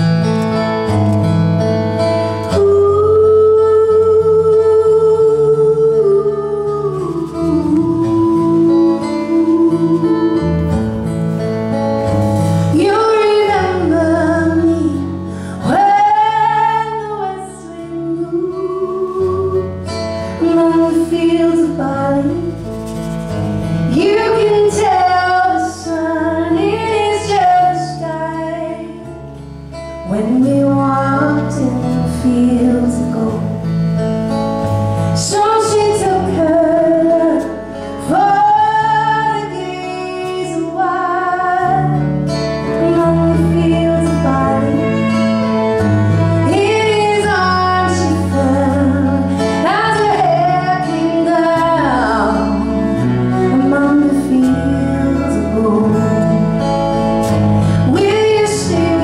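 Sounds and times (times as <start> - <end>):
acoustic guitar chords: 0.0 - 59.0
bass guitar: 0.0 - 59.0
sliding lead melody: 0.0 - 59.0.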